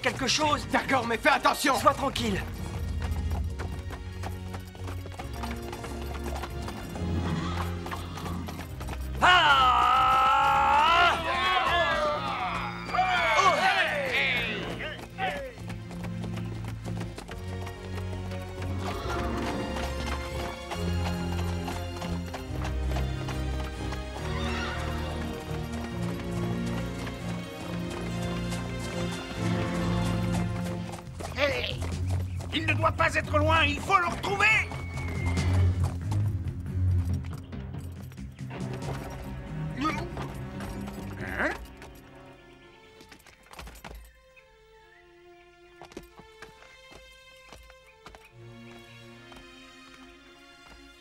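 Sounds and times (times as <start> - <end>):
horse hoofbeats galloping: 0.0 - 44.4, 45.6 - 51.0
background music: 0.0 - 51.0
horse whinnying: 6.8 - 15.4, 18.6 - 21.1, 24.2 - 25.7, 34.1 - 36.0.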